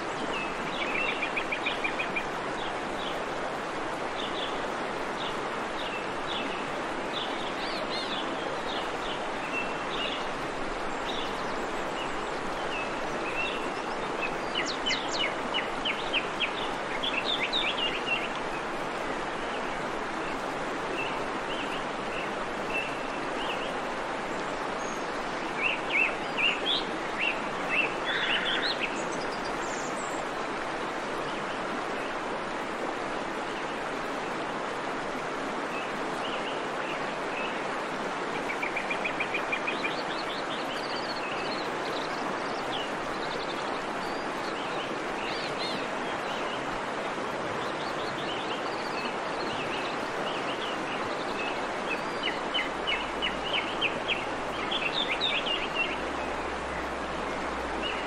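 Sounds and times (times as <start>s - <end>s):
outdoor background hiss: 0.0s - 58.0s.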